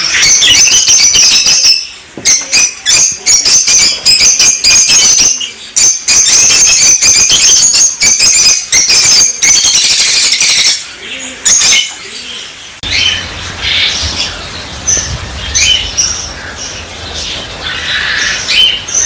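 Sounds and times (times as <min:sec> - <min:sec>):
lovebirds chattering and screeching: 0:00.0 - 0:19.0.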